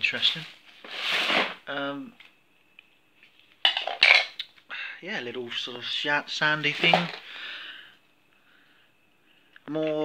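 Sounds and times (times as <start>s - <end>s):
plastic scoop set on wooden floor: 0.4s - 1.6s, 6.7s - 7.3s
plastic toys clattering: 3.6s - 4.4s, 6.8s - 7.3s.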